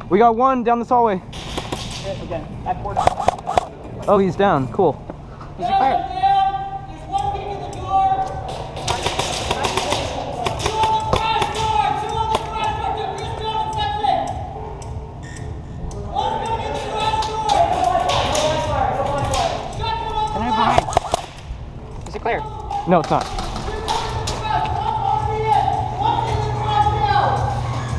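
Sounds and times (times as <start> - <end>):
airsoft gunfire bursts: 3.0 - 3.7, 8.8 - 12.5, 20.6 - 21.4
players shouting: 9.6 - 14.5, 22.2 - 27.9.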